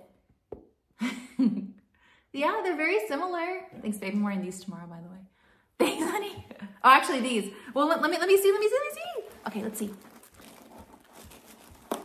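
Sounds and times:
paper stuffing rustling: 8.3 - 12.0.

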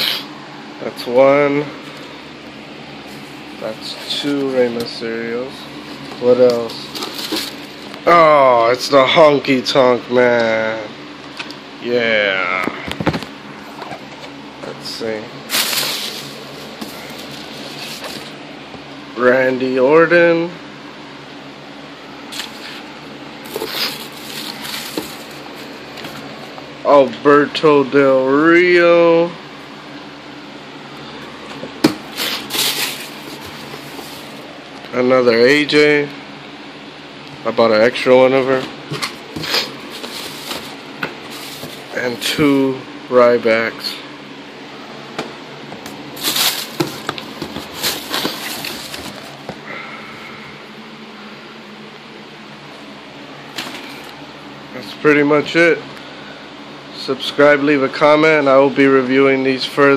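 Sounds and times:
low room hum: 0.0 - 59.9
packaging rustling and crinkling: 6.0 - 7.9, 15.5 - 18.4, 23.4 - 26.4, 32.0 - 34.4, 38.9 - 42.0, 46.2 - 49.6.

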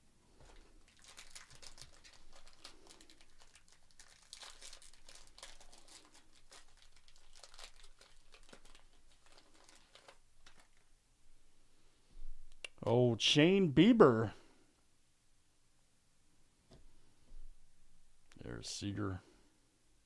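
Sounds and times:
foil wrapper crinkling and tearing: 0.4 - 10.9.

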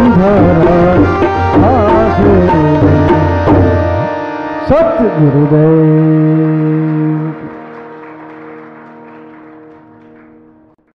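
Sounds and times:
harmonium chord: 0.0 - 10.9.

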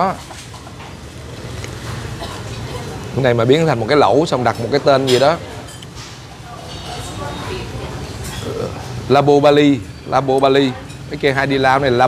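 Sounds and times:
indistinct background chatter: 1.3 - 12.0.

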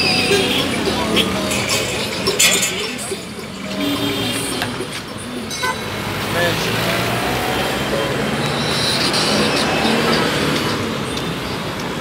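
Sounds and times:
people's voices: 0.0 - 11.1
vehicles passing: 0.0 - 12.0.

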